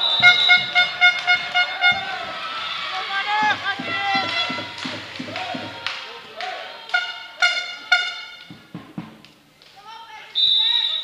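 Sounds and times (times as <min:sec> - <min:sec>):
high-pitched voices or horns: 0:00.0 - 0:02.3, 0:03.4 - 0:04.8, 0:06.9 - 0:08.5
rhythmic thumping: 0:00.0 - 0:06.0, 0:06.9 - 0:09.2.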